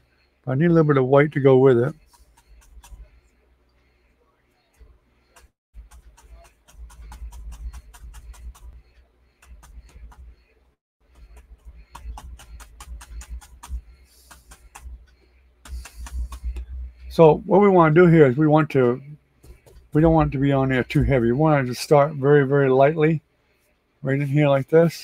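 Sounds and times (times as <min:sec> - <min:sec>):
paintbrush clicks and bumps: 0:01.7 - 0:03.4, 0:04.7 - 0:17.2, 0:19.4 - 0:20.3.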